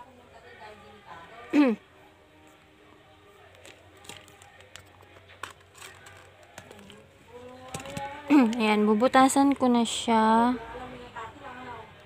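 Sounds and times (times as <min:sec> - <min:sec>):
faint background music: 0:00.0 - 0:12.0.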